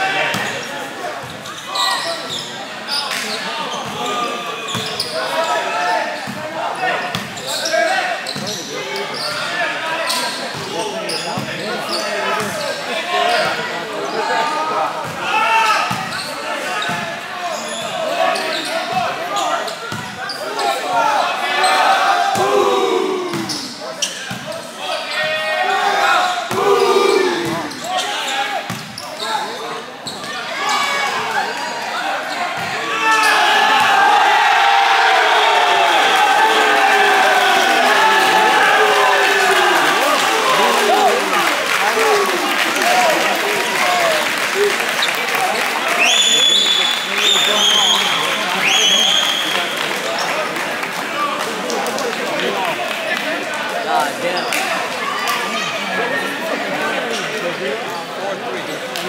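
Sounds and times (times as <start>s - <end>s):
players shouting: 0.0s - 28.7s, 30.4s - 49.7s
crowd cheering and applause: 33.4s - 53.7s.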